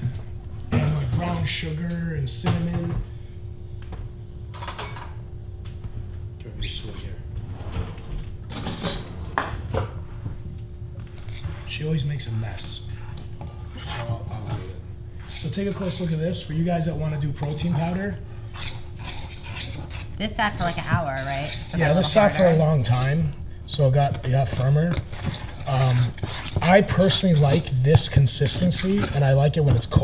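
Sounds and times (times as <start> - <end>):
steady hum: 0.0 - 30.0
kitchenware clattering: 4.5 - 5.2, 8.5 - 9.8
metal spoon scraping a saucepan: 15.2 - 16.5, 17.4 - 23.3, 24.2 - 30.0.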